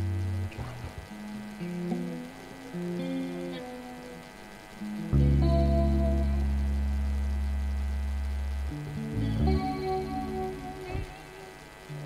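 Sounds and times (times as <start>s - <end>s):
keyboard and electric guitar music: 0.0s - 7.8s, 8.7s - 12.0s
electrical mains hum: 0.0s - 12.0s.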